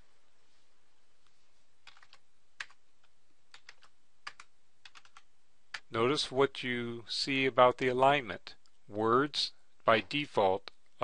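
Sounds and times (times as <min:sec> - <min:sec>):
keyboard keys clicking: 0:01.8 - 0:02.8, 0:03.5 - 0:05.8.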